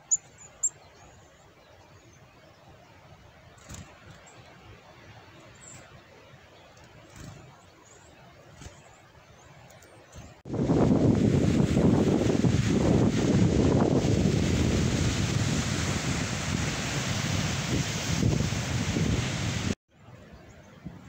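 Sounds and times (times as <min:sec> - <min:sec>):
wind buffeting microphone: 0:10.2 - 0:19.8
waves washing onto shore: 0:11.0 - 0:19.8.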